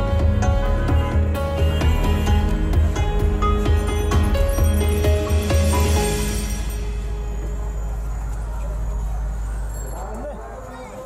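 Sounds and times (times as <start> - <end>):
auto-rickshaw engine rumbling: 0.0 - 11.0
street voices: 0.0 - 11.0.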